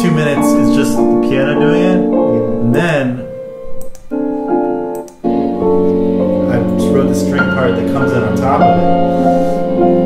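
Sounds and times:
repeating piano notes: 0.0 - 10.0
sustained piano chords: 0.0 - 10.0.

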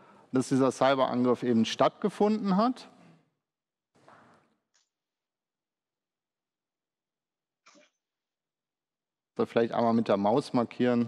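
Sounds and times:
faint breath: 0.0 - 0.3.

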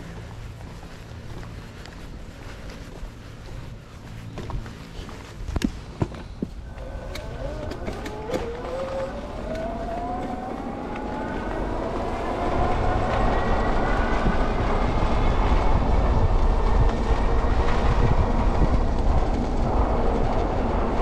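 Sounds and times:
electric motor whine: 6.6 - 15.9.

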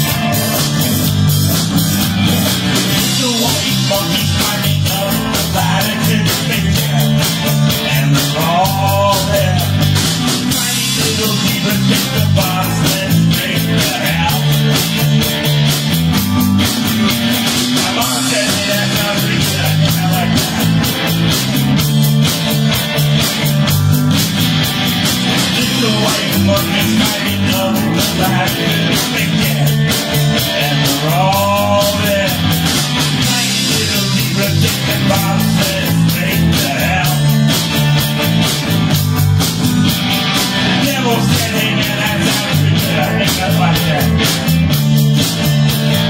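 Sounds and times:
drum beat: 0.0 - 46.0
rock band playing: 0.0 - 46.0.

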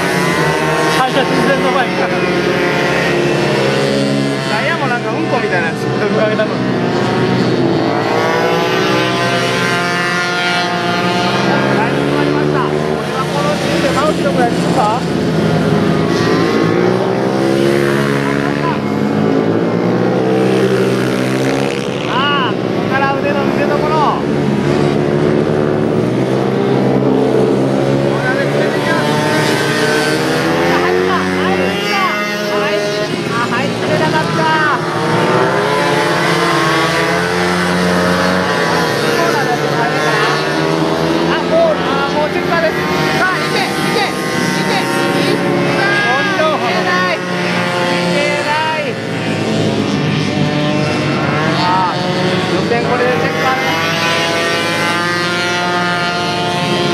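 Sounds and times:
motorcycle engines revving: 0.0 - 56.9.

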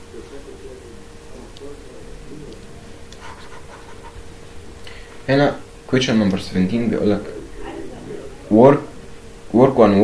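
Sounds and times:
faint steady hum: 0.0 - 10.0
quiet breathing: 2.3 - 5.3.

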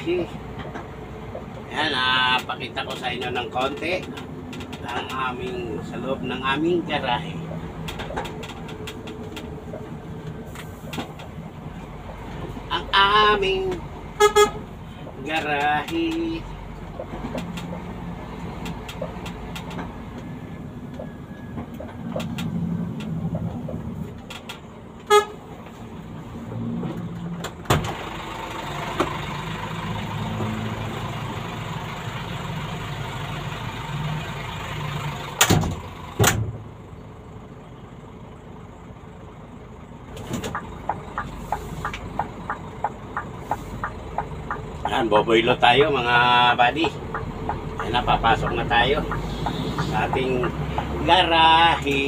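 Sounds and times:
road noise: 0.0 - 52.0
horn toot: 14.2 - 14.6, 25.1 - 25.4
vehicle engine running: 27.8 - 52.0.

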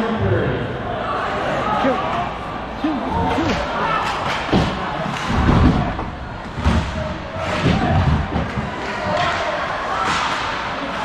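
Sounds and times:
arena crowd noise: 0.0 - 11.0
puck hitting rink boards: 3.3 - 11.0
heavy thumping on boards: 4.5 - 8.8.

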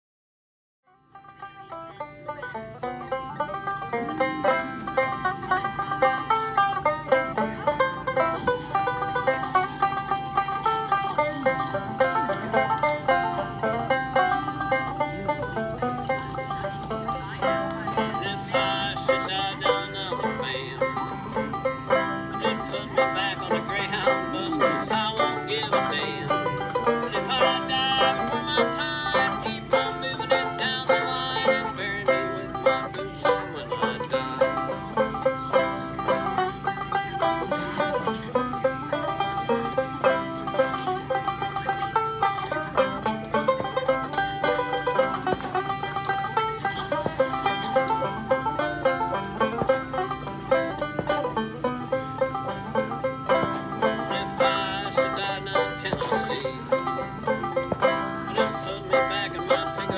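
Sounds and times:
banjo plucking: 0.9 - 59.9.

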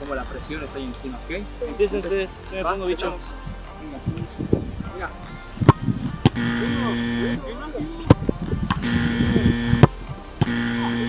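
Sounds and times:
background music held notes: 0.0 - 11.0.

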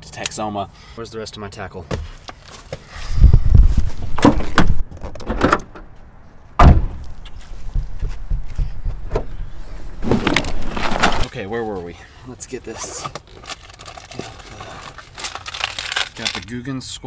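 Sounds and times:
handling knocks and rumbling: 3.5 - 11.3
car door shutting: 6.6 - 11.1.

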